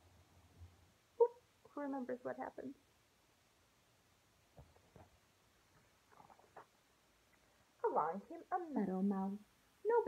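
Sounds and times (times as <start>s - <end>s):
book pages rustling: 4.5s - 6.8s.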